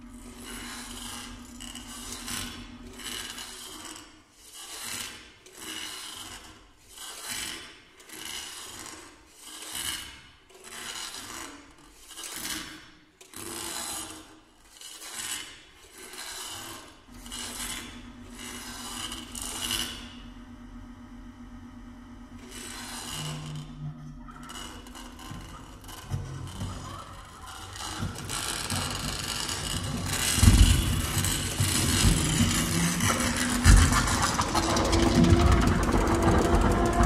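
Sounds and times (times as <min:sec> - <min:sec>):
steady low hum: 0:00.0 - 0:04.0, 0:17.0 - 0:37.0.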